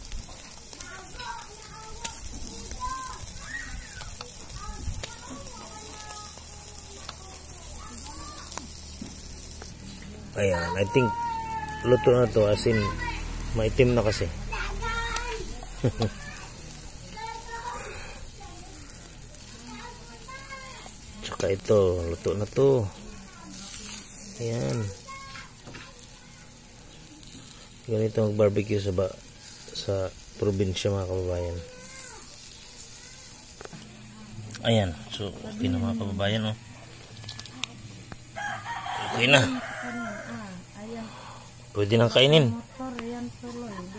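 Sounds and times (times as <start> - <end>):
chicken sizzling over embers: 0.0 - 43.9.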